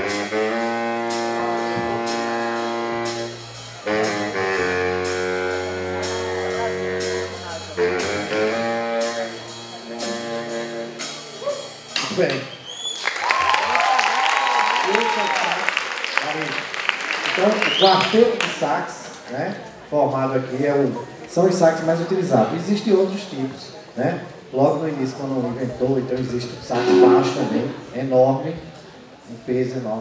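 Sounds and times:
baritone saxophone solo: 0.0 - 11.5, 26.7 - 27.9
applause: 12.9 - 18.6.

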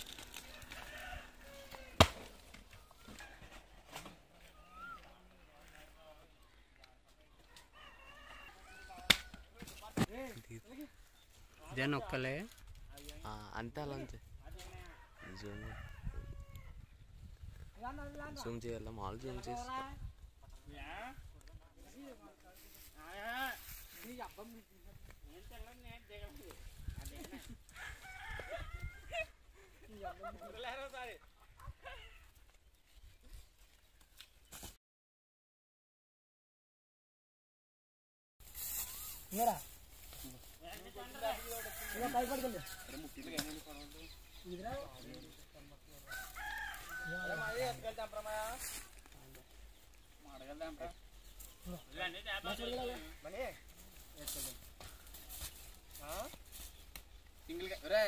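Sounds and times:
rooster crowing: 0.4 - 2.2, 7.5 - 9.4, 14.8 - 16.8, 27.7 - 29.3, 41.0 - 43.3, 46.0 - 47.8.

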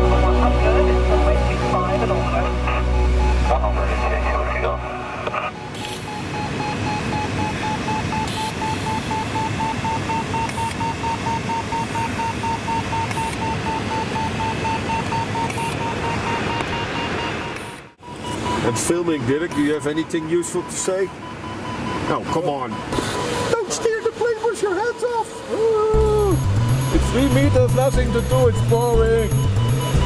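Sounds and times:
background music: 0.0 - 5.7, 26.0 - 30.0
airflow rush in cockpit: 0.0 - 18.8
variometer beeping rapidly: 5.5 - 25.4, 26.0 - 30.0.

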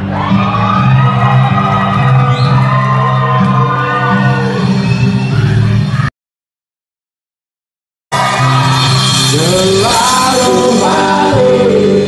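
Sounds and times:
band holding chords: 8.1 - 12.0.

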